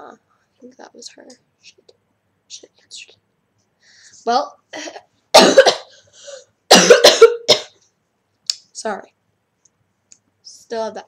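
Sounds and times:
girl coughing: 4.8s - 6.0s, 6.7s - 7.8s.

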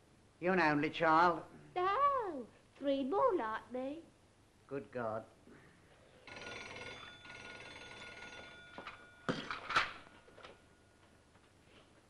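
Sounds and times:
electric bell ringing: 6.2s - 10.8s.

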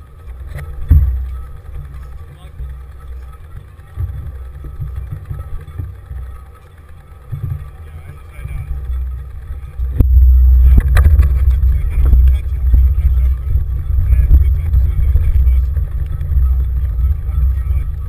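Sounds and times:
tyre road rumble: 0.0s - 18.0s
wind buffeting camera: 0.0s - 18.0s
bike knocks: 0.4s - 2.8s.

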